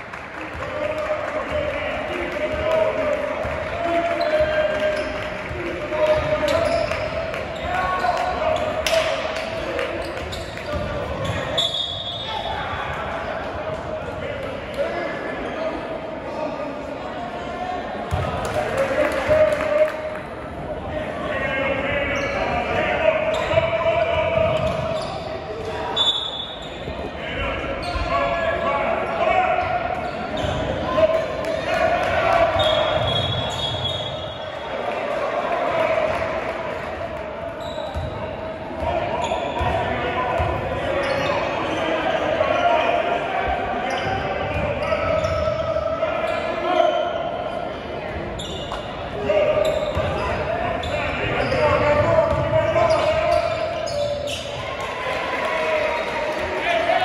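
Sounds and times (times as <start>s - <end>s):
indistinct shouts and chatter: 0.0s - 57.0s
sneakers squeaking: 3.9s - 12.8s, 21.8s - 28.7s, 29.6s - 31.2s, 32.4s - 34.7s, 37.5s - 54.8s.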